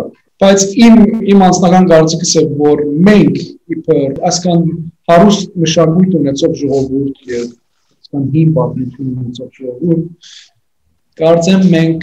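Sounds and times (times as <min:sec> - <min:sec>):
person speaking: 0:00.0 - 0:12.0.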